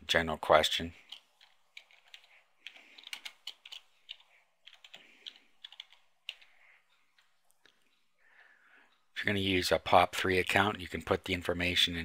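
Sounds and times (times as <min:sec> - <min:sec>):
typing on computer keyboard: 0:01.0 - 0:06.6.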